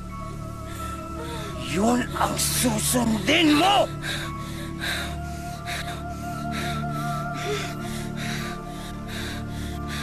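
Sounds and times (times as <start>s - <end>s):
film music of sustained tones: 0.0s - 10.0s.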